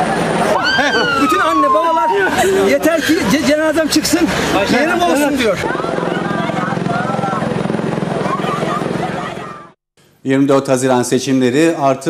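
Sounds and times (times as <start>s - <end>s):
engine running: 0.0s - 9.8s.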